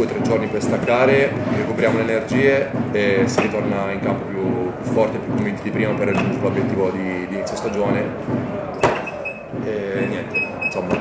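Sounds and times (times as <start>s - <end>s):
man's voice: 9.6s - 11.0s.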